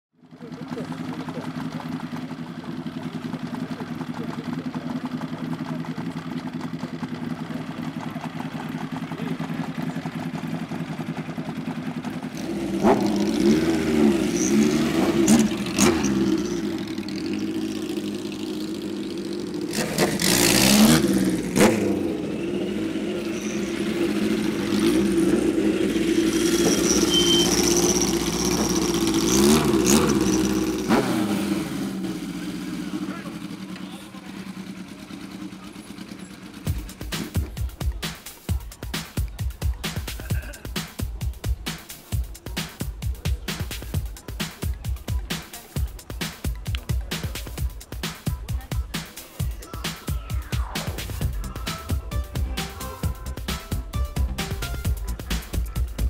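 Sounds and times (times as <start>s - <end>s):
motorcycle engine idling: 0.2s - 56.0s
motorcycle engines revving: 0.2s - 56.0s.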